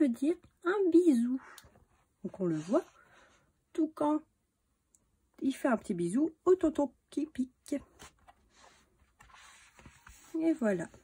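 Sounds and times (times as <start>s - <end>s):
paper page being turned: 8.0s - 10.7s.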